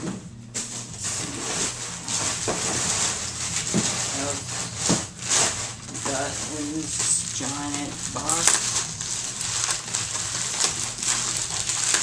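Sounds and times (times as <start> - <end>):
plastic bags rustling and crinkling: 0.4 - 12.0
sharp crackles: 5.2 - 12.0.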